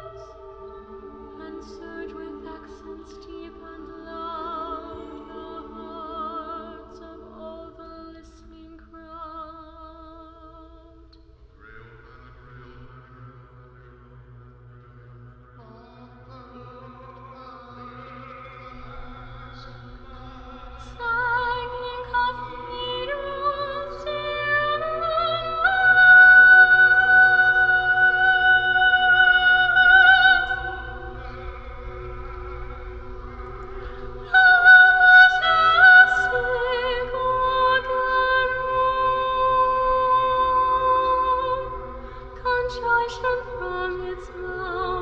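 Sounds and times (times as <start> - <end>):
choir singing softly: 0.0 - 45.0
steady low drone: 11.6 - 45.0.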